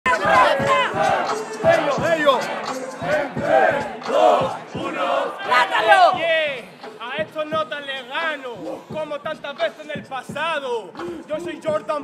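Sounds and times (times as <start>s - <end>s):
crowd of men shouting and cheering: 0.0s - 6.8s.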